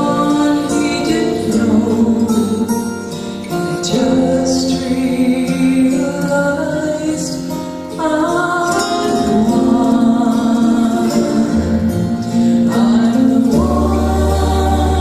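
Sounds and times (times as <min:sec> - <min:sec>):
woman singing gospel song: 0:00.0 - 0:03.0, 0:03.8 - 0:15.0.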